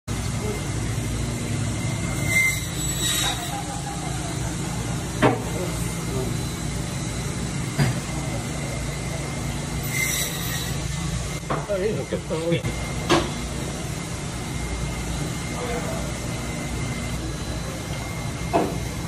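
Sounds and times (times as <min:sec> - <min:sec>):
faint voices: 0:03.2 - 0:09.8, 0:14.9 - 0:19.0.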